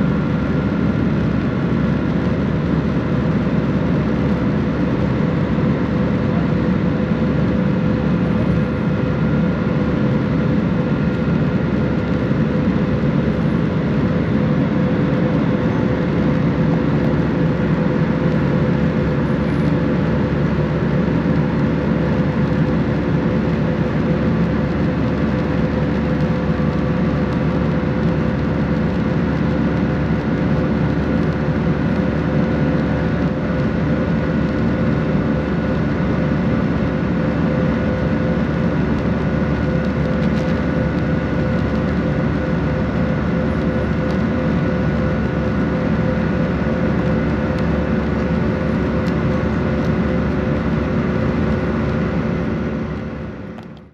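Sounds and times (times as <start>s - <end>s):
airplane cabin engine rush: 0.0s - 53.9s.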